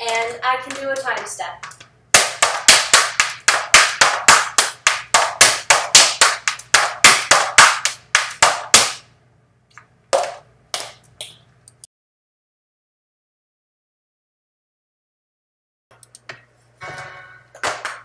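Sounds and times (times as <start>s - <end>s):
tap shoes tapping: 0.0s - 9.0s.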